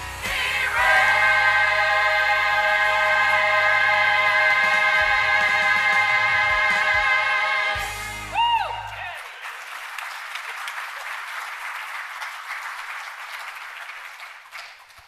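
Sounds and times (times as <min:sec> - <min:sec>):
choir and band final chord: 0:00.0 - 0:09.1
congregation applauding: 0:08.2 - 0:15.0.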